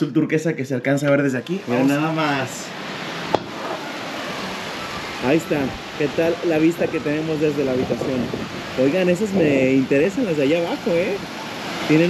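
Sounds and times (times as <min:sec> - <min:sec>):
rushing wind: 0:01.6 - 0:12.0
sharp knock: 0:03.3 - 0:03.6.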